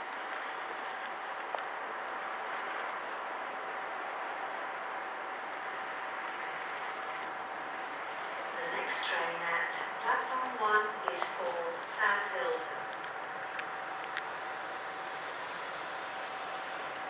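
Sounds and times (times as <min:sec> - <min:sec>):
distant electric train hiss: 0:00.0 - 0:17.0.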